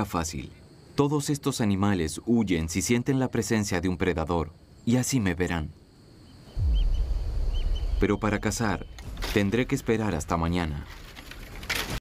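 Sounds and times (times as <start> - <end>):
faint bird chirps: 2.0 - 9.9
deep low rumble: 6.6 - 9.3.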